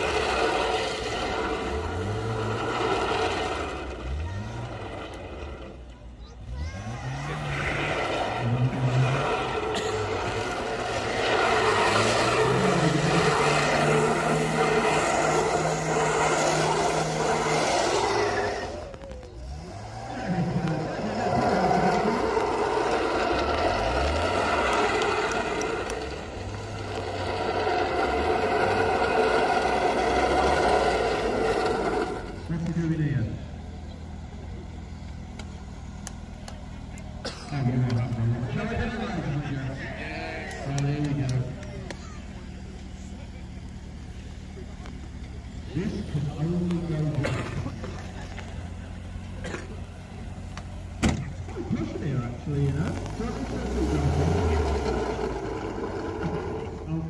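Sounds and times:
car engine revving hard: 0.0 - 5.8, 6.4 - 33.7, 36.9 - 57.0.

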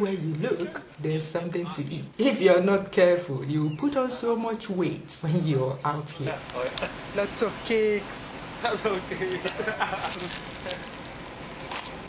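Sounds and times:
cling film crinkling: 9.8 - 12.0.

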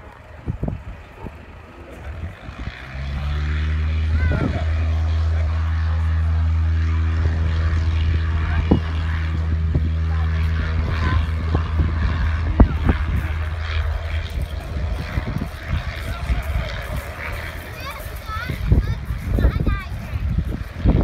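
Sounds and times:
propeller aircraft engine drone: 0.0 - 21.0.

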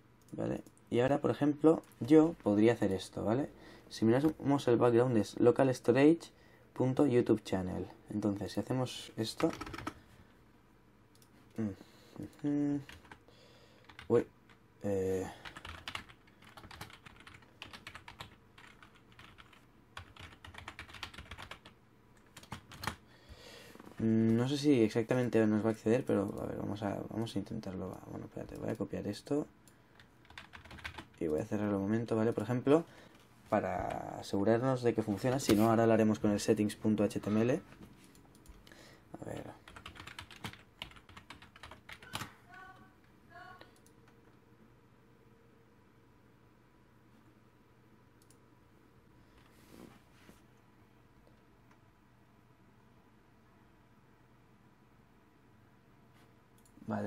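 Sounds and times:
faint typing on computer keyboard: 9.2 - 10.2, 11.1 - 23.1, 26.0 - 26.7, 27.5 - 33.2, 37.2 - 44.4, 48.2 - 48.5, 56.5 - 57.0.

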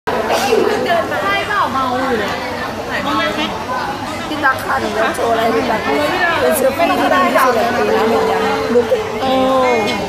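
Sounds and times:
chatter of people: 0.1 - 10.0.

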